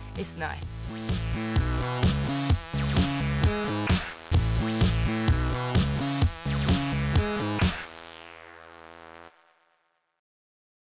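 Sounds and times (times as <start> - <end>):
electronic music held note: 0.0 - 10.1.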